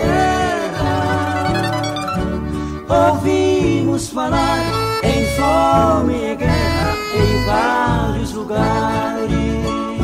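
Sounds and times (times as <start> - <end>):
steady bass line: 0.0 - 9.7
accordion melody: 0.0 - 9.8.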